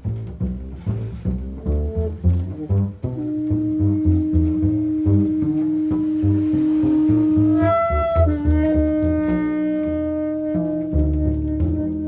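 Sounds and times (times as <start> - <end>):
double bass plucking low notes: 0.0 - 12.0.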